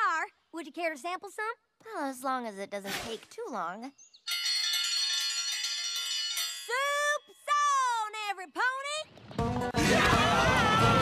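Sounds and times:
metal triangle ringing: 4.3s - 7.8s.

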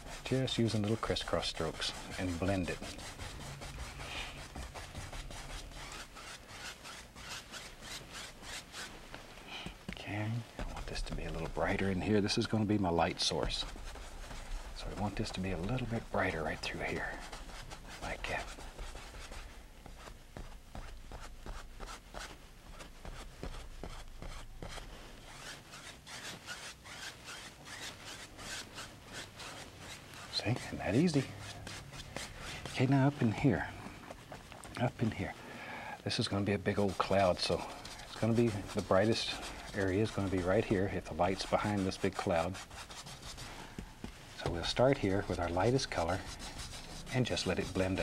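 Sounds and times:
brush scrubbing on canvas: 0.0s - 35.5s, 36.1s - 48.0s.

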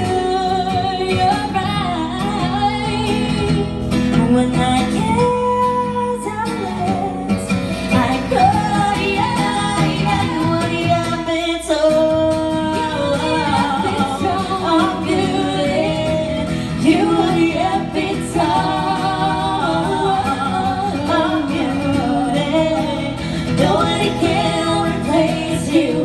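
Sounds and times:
acoustic guitar: 0.0s - 26.0s
woman singing into a microphone: 0.0s - 26.0s.

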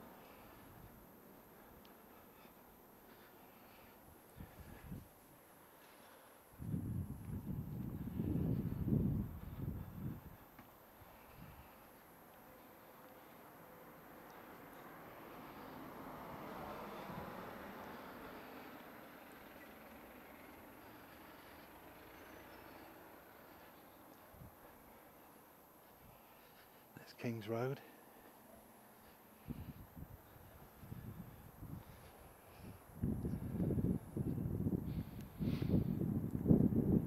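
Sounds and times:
wind buffeting microphone: 4.3s - 5.1s, 6.6s - 10.5s, 29.4s - 37.0s
vehicle passing: 11.0s - 26.7s.

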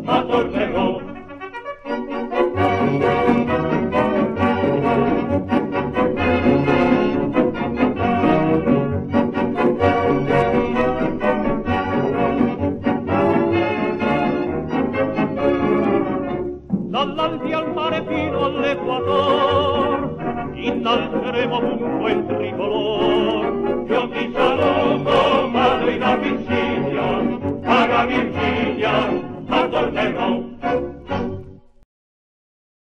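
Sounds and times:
brass band playing: 0.0s - 31.5s.

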